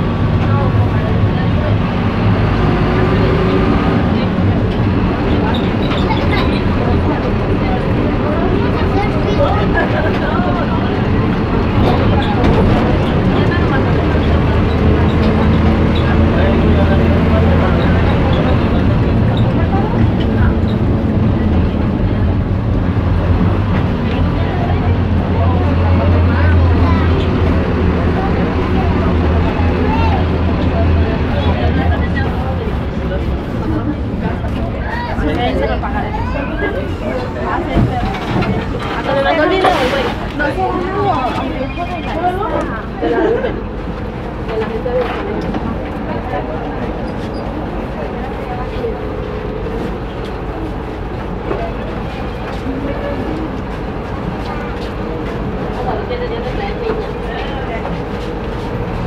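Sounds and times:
bus engine droning: 0:00.0 - 0:59.0
passengers chattering: 0:00.0 - 0:59.0.

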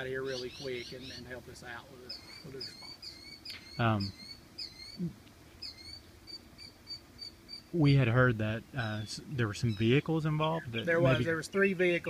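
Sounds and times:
songbird chirping: 0:00.0 - 0:12.0.

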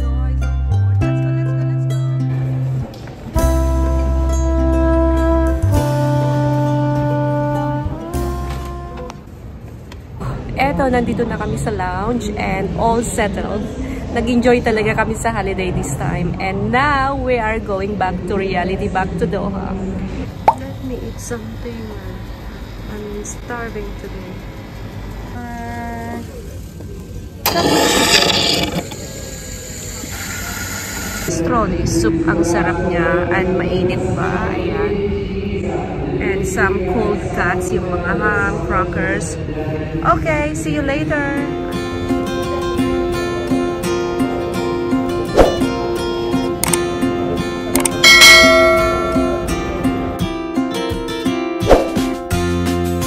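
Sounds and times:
acoustic guitar music: 0:00.0 - 0:09.2, 0:41.1 - 0:53.0
coffee machine rushing noise: 0:27.3 - 0:31.3
coffee machine dispensing: 0:27.5 - 0:31.3
bright bell chime: 0:48.0 - 0:50.0.

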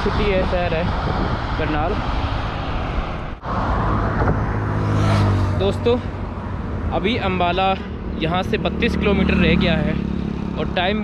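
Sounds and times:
wind on microphone: 0:00.0 - 0:07.0
highway traffic noise: 0:00.0 - 0:11.0.

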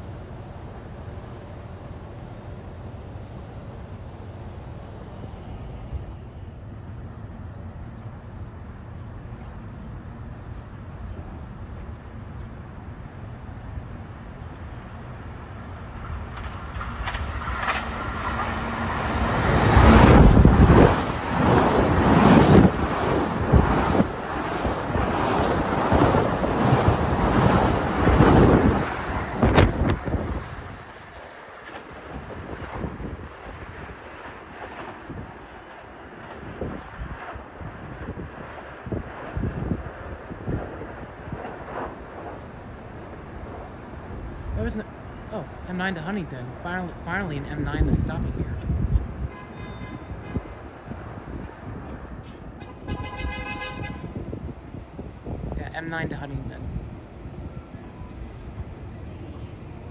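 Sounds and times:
train passing: 0:00.0 - 0:59.9
wind buffeting microphone: 0:05.1 - 0:45.6, 0:47.0 - 0:59.9
wheels clattering over rail joints: 0:15.7 - 0:31.8.

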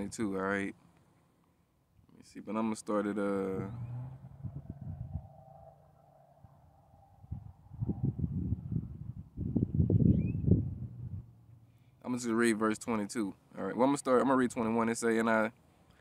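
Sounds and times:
wind buffeting microphone: 0:03.6 - 0:05.7, 0:06.4 - 0:11.6.

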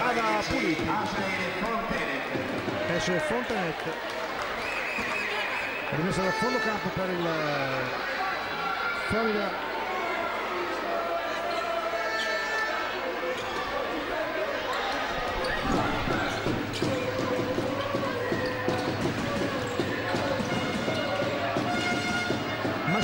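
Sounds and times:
murmur of voices: 0:00.0 - 0:23.0
basketball bouncing on hardwood: 0:16.2 - 0:23.0.

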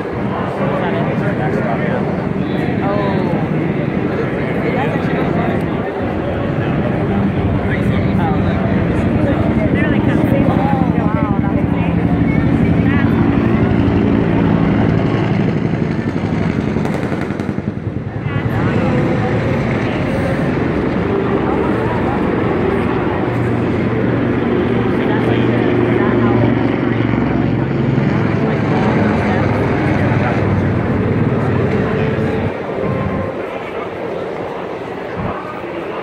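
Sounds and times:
crowd voices: 0:00.0 - 0:36.0
heavy engines droning: 0:00.0 - 0:36.0.

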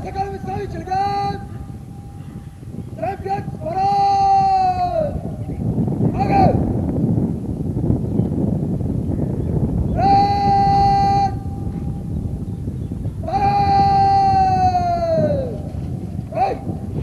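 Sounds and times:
man shouting drill commands: 0:00.0 - 0:01.6, 0:03.0 - 0:05.4, 0:06.0 - 0:06.7, 0:09.9 - 0:11.7, 0:13.2 - 0:15.6, 0:16.3 - 0:16.8
low background rumble: 0:00.0 - 0:17.0.

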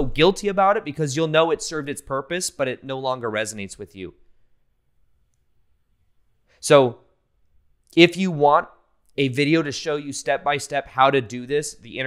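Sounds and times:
man speaking: 0:00.0 - 0:04.2, 0:06.6 - 0:07.0, 0:07.9 - 0:12.0.

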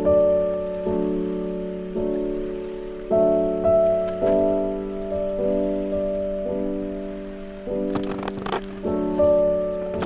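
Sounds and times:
piano chords: 0:00.0 - 0:10.0.

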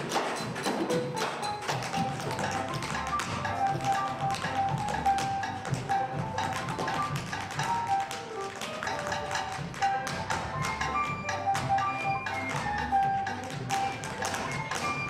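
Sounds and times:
tap shoes on wooden stage: 0:00.0 - 0:15.0
upbeat music: 0:00.0 - 0:15.0.

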